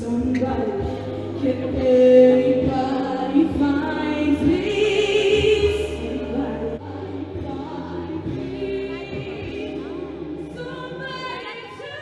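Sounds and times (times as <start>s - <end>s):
bass tones: 0.0s - 11.5s
woman singing: 0.0s - 12.0s.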